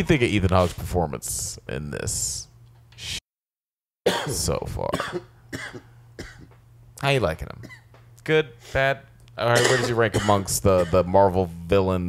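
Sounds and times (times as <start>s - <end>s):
person coughing: 4.1s - 6.6s, 9.5s - 11.1s
low steady hum: 4.1s - 12.0s.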